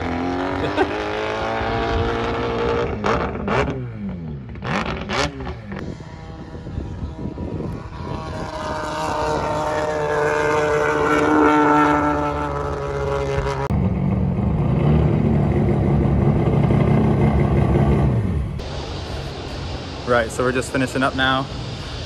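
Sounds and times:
rotary engine high note: 0.0s - 22.0s
car driving slowly: 7.7s - 22.0s.

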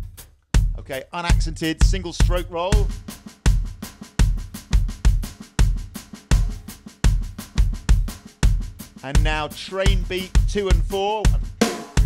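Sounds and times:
syncopated bass drum: 0.0s - 12.0s
electronic snare drum roll: 1.2s - 12.0s.

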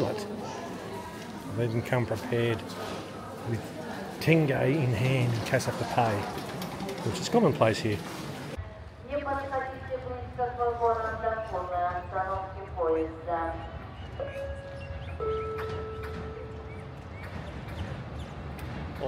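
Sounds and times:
echoing public address announcement: 0.0s - 18.0s
low rumble of busy station: 0.0s - 19.0s.

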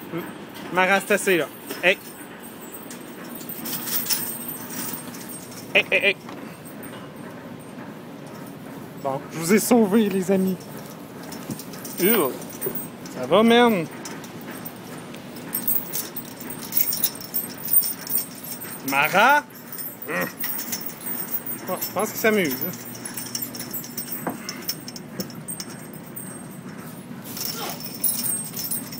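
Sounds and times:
light clinking of metal: 0.2s - 28.9s.

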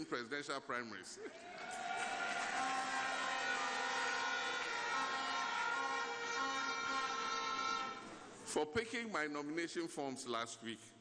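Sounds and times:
horns blown by audience: 1.7s - 8.3s.

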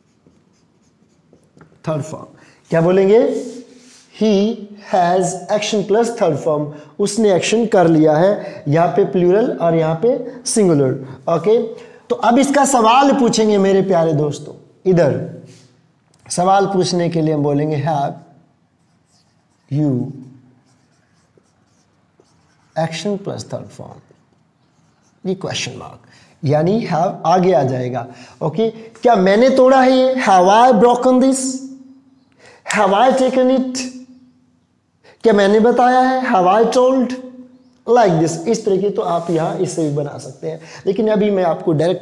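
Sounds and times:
marker writing on whiteboard: 0.0s - 2.1s, 18.7s - 25.4s
man speaking: 1.8s - 15.5s, 16.3s - 18.2s, 19.7s - 20.3s, 22.7s - 24.2s, 25.2s - 31.8s, 32.7s - 34.1s, 35.2s - 42.0s
man talking: 1.8s - 15.5s, 16.3s - 18.2s, 19.7s - 20.3s, 22.7s - 24.2s, 25.2s - 31.8s, 32.7s - 34.0s, 35.2s - 42.0s.

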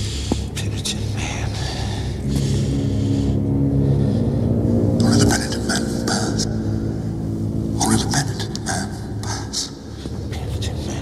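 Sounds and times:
low droning rumble: 0.0s - 11.0s.

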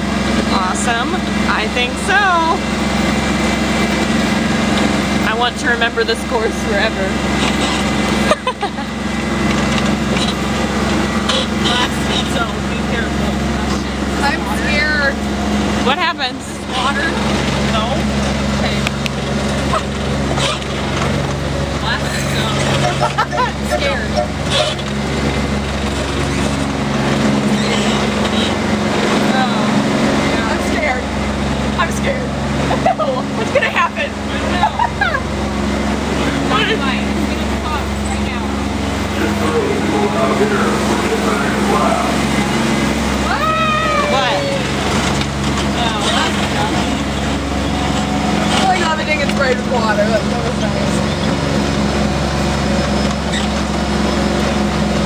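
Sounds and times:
ride train motor humming: 0.0s - 55.0s
train cars rattling: 0.0s - 55.0s
person's drawn-out cry: 43.2s - 44.7s.

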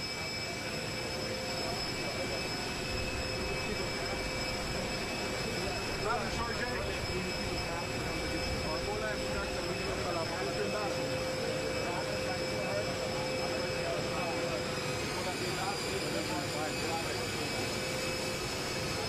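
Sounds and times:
jet engines whining: 0.0s - 19.0s
indistinct conversation: 0.6s - 19.0s.

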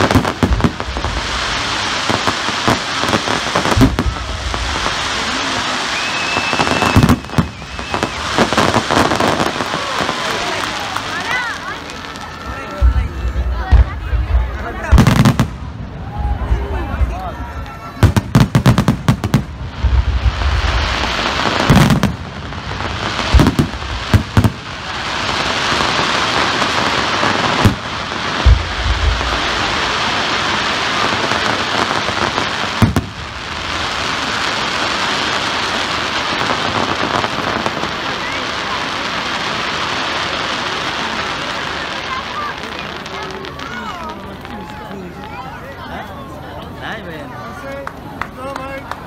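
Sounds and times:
fireworks bangs: 0.0s - 45.6s
fireworks crackling: 0.0s - 49.0s.

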